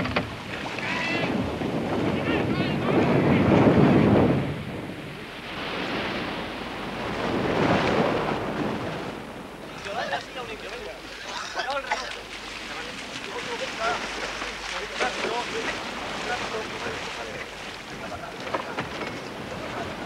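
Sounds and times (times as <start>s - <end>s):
sea surf washing in: 0.0s - 20.0s.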